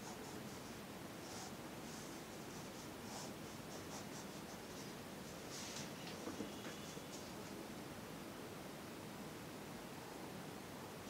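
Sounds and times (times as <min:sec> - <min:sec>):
pencil scratching on paper: 0:00.0 - 0:05.4.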